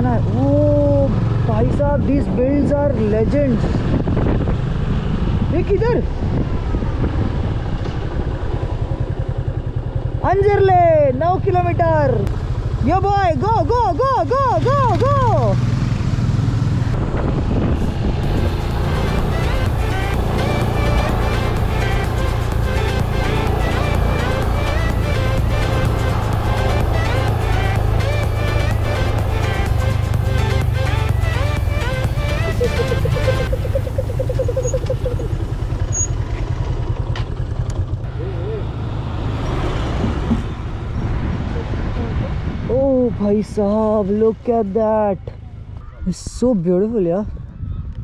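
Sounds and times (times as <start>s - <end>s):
wind noise on microphone: 0.0s - 9.0s, 16.5s - 20.8s, 39.8s - 44.1s, 46.0s - 48.0s
motorcycle engine running: 0.0s - 39.2s
background music: 18.2s - 34.0s.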